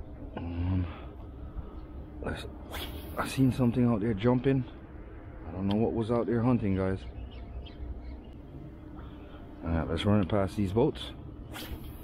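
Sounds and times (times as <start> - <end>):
low background rumble: 0.0 - 12.0
faint bird chirps: 6.6 - 8.4.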